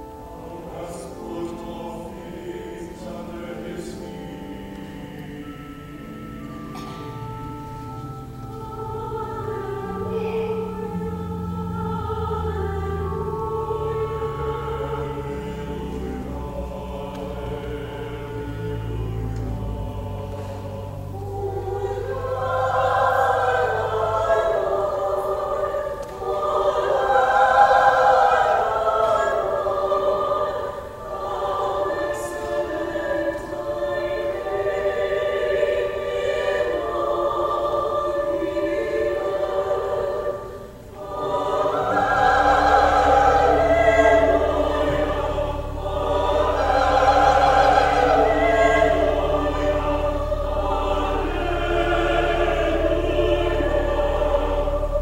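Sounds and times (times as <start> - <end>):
low organ bass notes: 0.0 - 30.5, 41.0 - 55.0
choir singing: 0.0 - 55.0.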